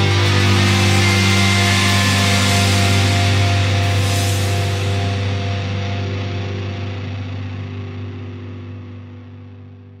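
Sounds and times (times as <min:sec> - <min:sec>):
thrash metal band chord ringing: 0:00.0 - 0:07.9.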